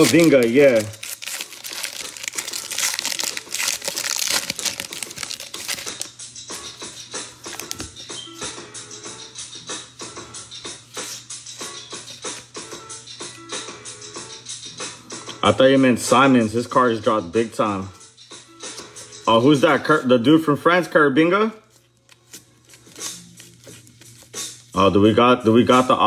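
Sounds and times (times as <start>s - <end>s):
cards shuffling clicks: 0.0s - 6.1s, 7.4s - 8.1s, 10.9s - 12.5s, 21.7s - 24.7s
foil wrapper crinkling: 0.0s - 6.1s
quiet background music: 0.0s - 26.0s.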